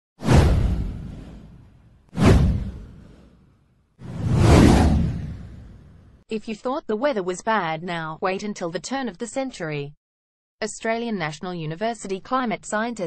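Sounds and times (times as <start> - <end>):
whoosh with deep rumble: 0.2 - 3.3, 4.0 - 6.2.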